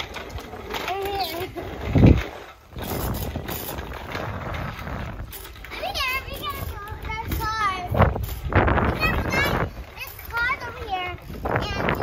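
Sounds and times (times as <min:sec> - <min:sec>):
bicycle wheels clattering on asphalt: 0:00.0 - 0:12.0.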